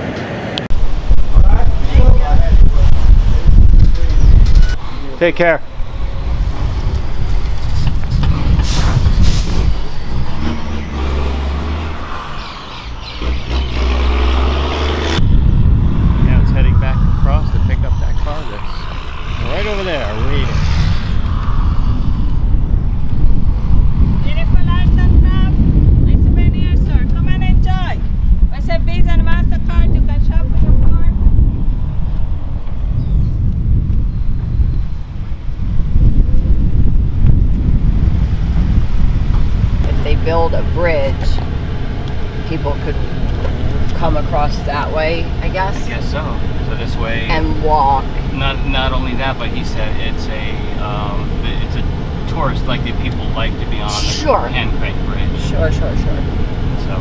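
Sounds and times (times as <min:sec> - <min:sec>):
wind buffeting microphone: 0:00.6 - 0:57.0
indistinct voices: 0:09.5 - 0:23.6, 0:49.2 - 0:57.0.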